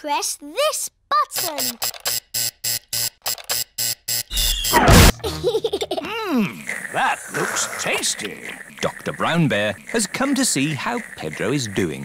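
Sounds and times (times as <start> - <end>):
squeaky cartoon sounds: 1.1 - 1.9, 4.3 - 5.3
stuttering cartoon button sound: 1.4 - 1.9.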